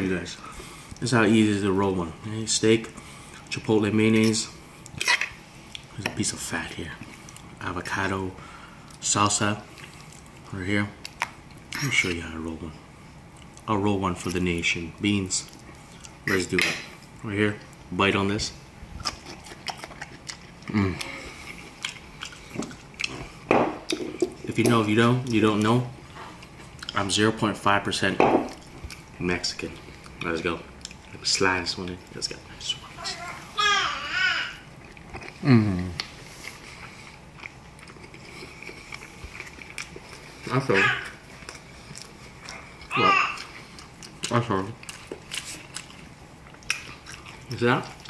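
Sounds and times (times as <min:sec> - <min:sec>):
person chewing: 0:09.7 - 0:12.2, 0:15.4 - 0:16.3, 0:19.0 - 0:27.2, 0:28.4 - 0:32.2, 0:34.6 - 0:48.0.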